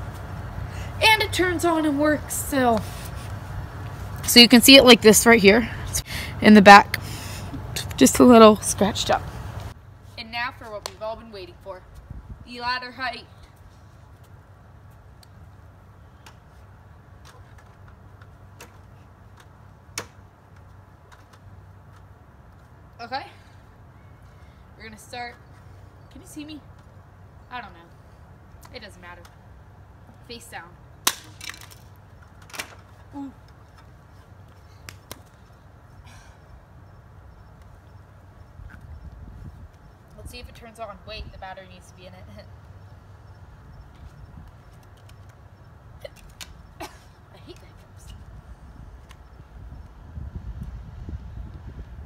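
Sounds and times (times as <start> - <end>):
low outdoor rumble: 0.0 - 52.0.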